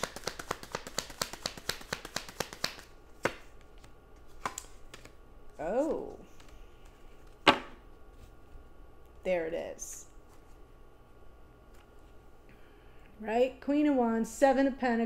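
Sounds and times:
cards being shuffled: 0.0 - 5.2, 5.9 - 7.4.

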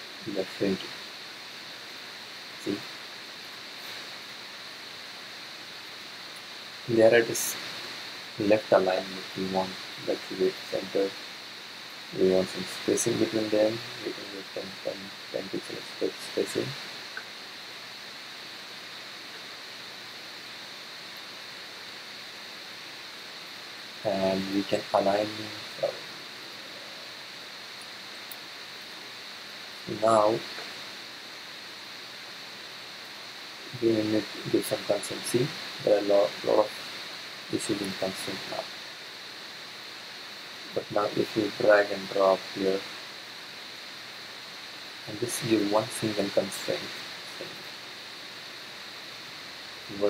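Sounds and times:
microphone hiss: 0.0 - 50.0.

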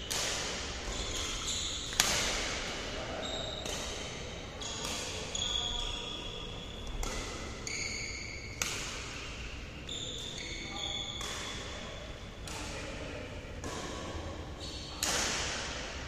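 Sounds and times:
rackets striking shuttlecocks: 0.0 - 2.9, 3.5 - 5.4, 6.9 - 13.0, 13.6 - 14.4, 15.0 - 16.0
shoes squeaking on court floor: 0.8 - 8.7, 9.3 - 11.6.

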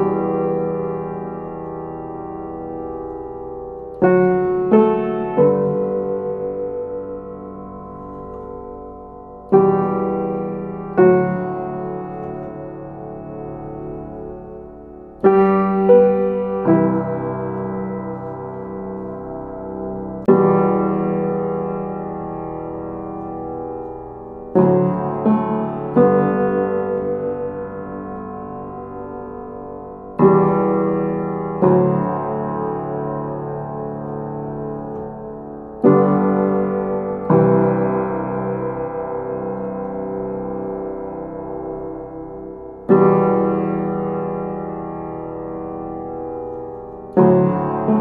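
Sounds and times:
slow piano chords: 0.0 - 48.0.

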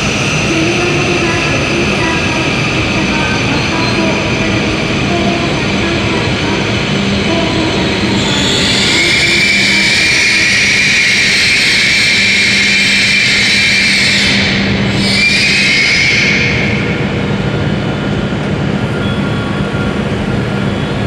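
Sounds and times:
train rolling and braking: 0.0 - 21.0
high brake squeal: 8.0 - 17.0, 18.9 - 20.0.

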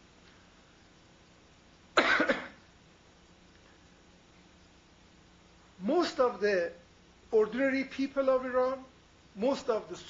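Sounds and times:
man coughing: 2.0 - 2.6.

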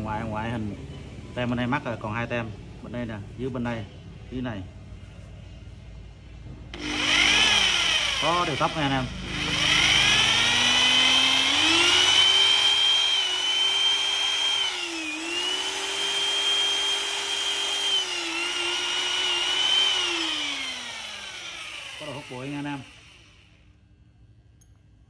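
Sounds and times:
drill motor whining: 6.8 - 23.6.

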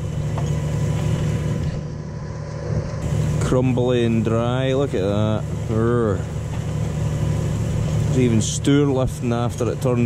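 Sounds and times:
tractor diesel engine drone: 0.0 - 10.0.

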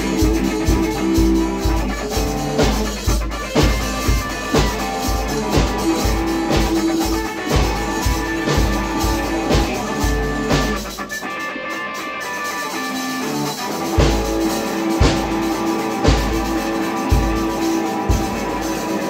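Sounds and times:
electric bass guitar: 0.0 - 19.0
rock drum kit: 0.0 - 19.0.

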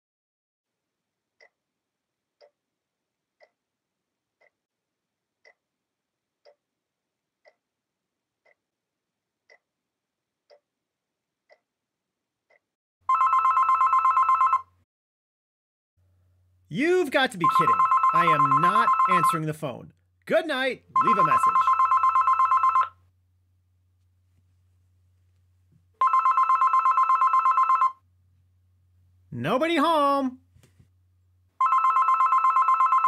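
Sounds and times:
telephone ringing: 13.1 - 14.8, 17.4 - 19.5, 20.9 - 23.0, 26.0 - 28.0, 31.6 - 33.0.

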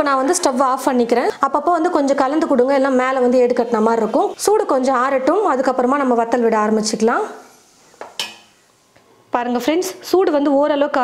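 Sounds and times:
ladle clinking against metal pot: 8.2 - 8.5.

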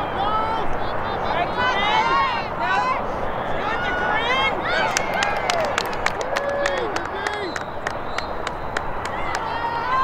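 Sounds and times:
outdoor background noise: 0.0 - 10.0
players calling out: 0.0 - 10.0.

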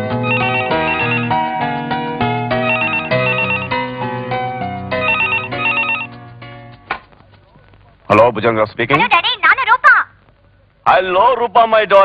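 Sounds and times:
keyboard music: 0.0 - 6.9
telephone ringing with warbling trill: 0.2 - 1.6, 2.5 - 3.9, 5.0 - 6.1.

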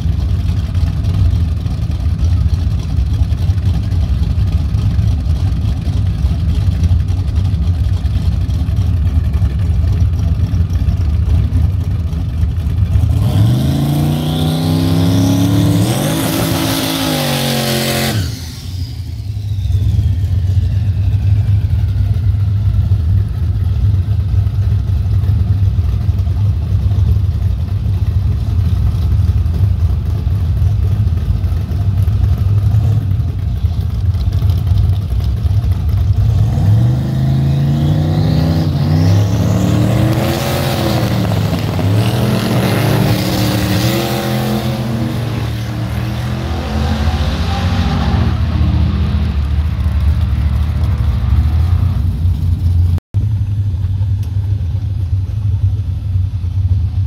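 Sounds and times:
car engine idling: 0.0 - 13.6, 18.3 - 36.4, 48.4 - 57.0
car engine revving: 4.7 - 23.9, 32.0 - 53.0.

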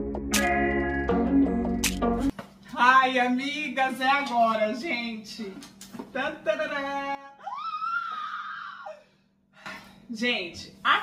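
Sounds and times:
woman squealing: 7.2 - 9.1.

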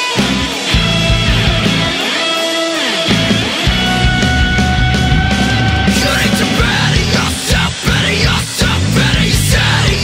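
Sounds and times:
guitar note sliding down: 0.0 - 8.3
rock band playing: 0.0 - 10.0.

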